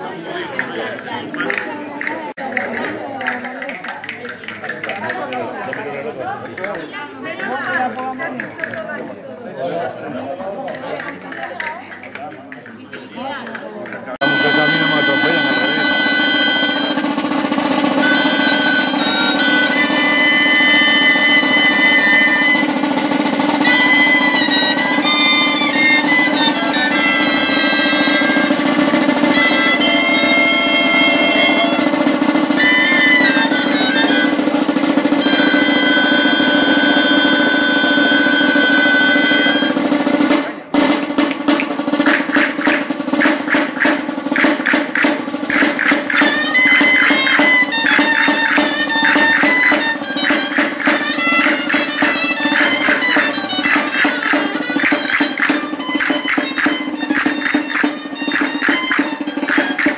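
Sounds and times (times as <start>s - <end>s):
folk percussion steady beat: 0.0s - 59.9s
shawms holding shrill note: 14.2s - 39.9s, 45.5s - 59.9s
snare drum roll: 14.2s - 59.9s.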